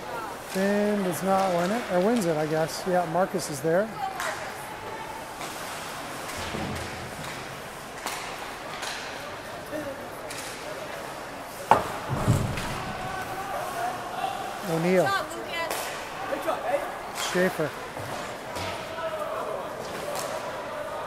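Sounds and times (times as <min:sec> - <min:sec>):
ice skates on rink: 0:03.5 - 0:18.6.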